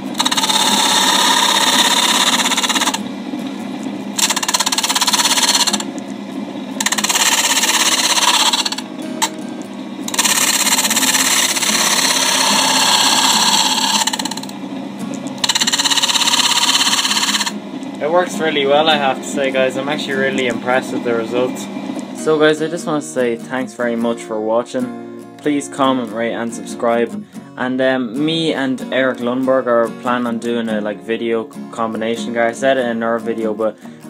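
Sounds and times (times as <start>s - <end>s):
spinning disc and motor hum: 0.0s - 24.1s
disc sander sanding wood: 0.2s - 3.0s, 4.2s - 5.8s, 6.8s - 9.3s, 10.1s - 14.5s, 15.4s - 22.9s.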